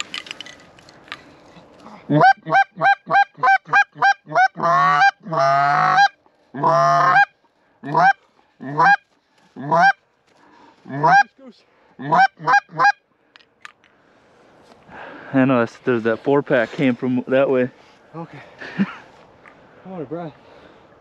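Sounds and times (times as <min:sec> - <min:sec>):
goose clucking: 0:02.1 - 0:10.0, 0:10.9 - 0:11.3, 0:12.0 - 0:13.0
goose honking: 0:02.1 - 0:10.0, 0:10.9 - 0:11.3, 0:12.0 - 0:13.0.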